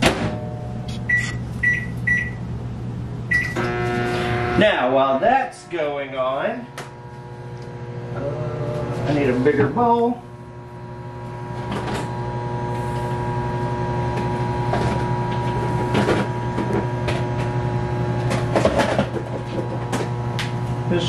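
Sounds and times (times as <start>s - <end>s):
microwave oven humming: 0.0s - 21.0s.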